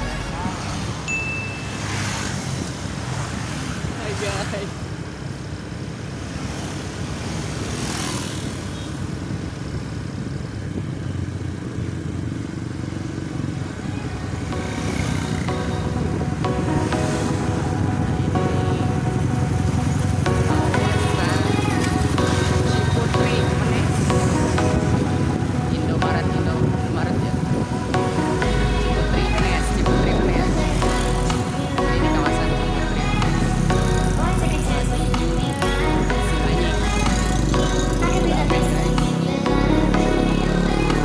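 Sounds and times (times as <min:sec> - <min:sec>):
road and wind rumble: 0:00.0 - 0:41.0.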